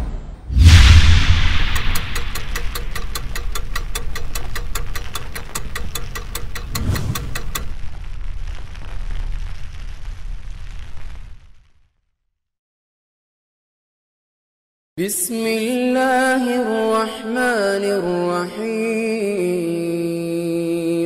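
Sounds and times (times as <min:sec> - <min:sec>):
deep boom: 0:00.0 - 0:11.8
low swell: 0:00.5 - 0:08.5
fast even ticking: 0:00.6 - 0:07.8
steady rushing hiss: 0:00.6 - 0:11.2.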